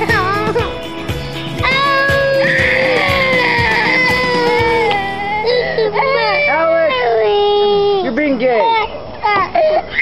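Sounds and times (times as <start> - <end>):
toddler crying: 1.5 - 10.0.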